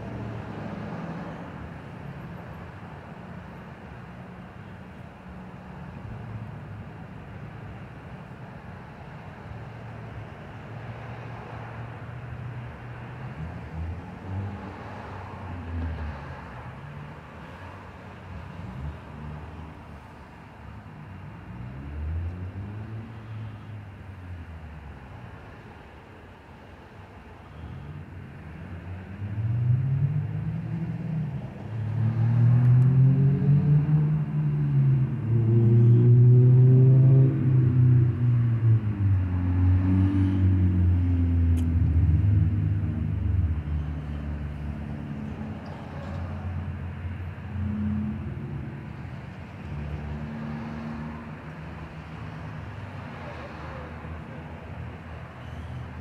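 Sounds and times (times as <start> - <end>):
vehicle engine passing by: 29.1 - 55.8.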